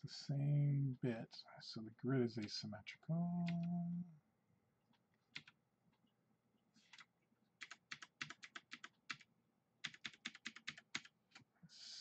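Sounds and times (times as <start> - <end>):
computer keyboard key clicks: 6.8 - 9.2, 9.8 - 11.4.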